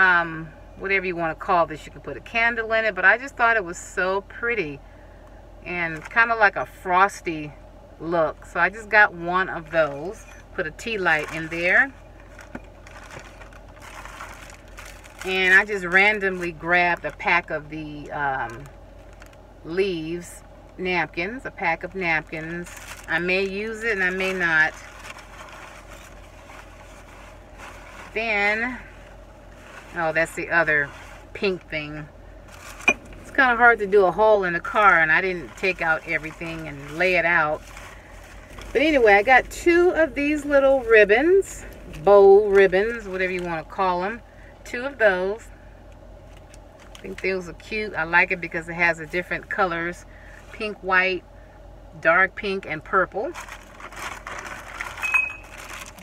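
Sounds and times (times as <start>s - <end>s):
car cabin low rumble: 0.0s - 56.0s
shopping items being moved: 5.7s - 7.2s, 8.4s - 20.3s, 21.0s - 44.2s, 53.0s - 56.0s
plastic packaging crinkling: 9.6s - 19.4s, 22.2s - 31.7s, 32.4s - 43.5s, 53.2s - 56.0s.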